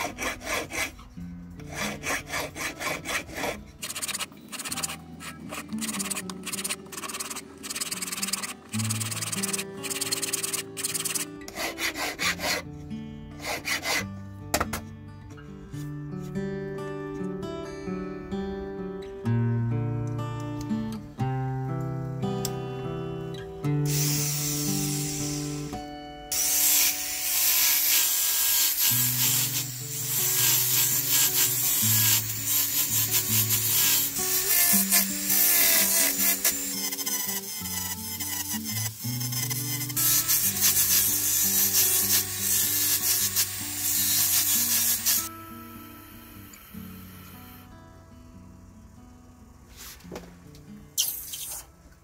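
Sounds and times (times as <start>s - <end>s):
guitar music: 0.0s - 52.0s
rotary sanding band grinding ring: 1.7s - 12.6s, 26.3s - 45.3s.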